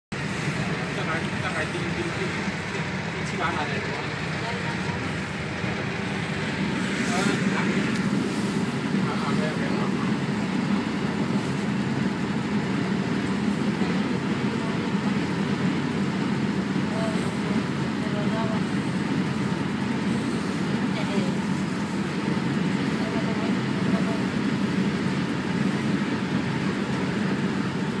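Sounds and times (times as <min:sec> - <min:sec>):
bus engine drone: 0:00.1 - 0:28.0
road and tyre noise: 0:00.1 - 0:28.0.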